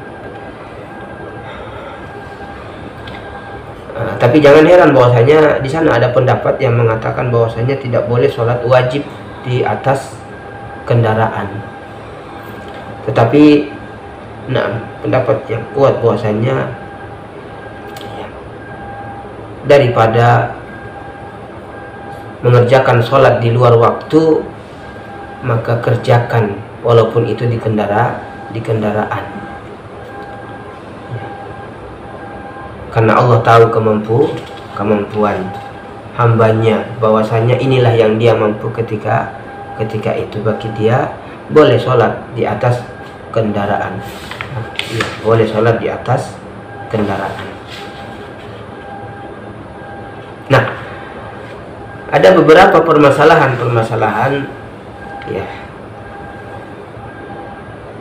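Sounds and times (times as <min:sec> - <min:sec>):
faint whining tones: 0:00.0 - 0:58.0
mechanical hum: 0:00.0 - 0:58.0
room noise: 0:00.0 - 0:58.0
person speaking: 0:32.9 - 0:48.7.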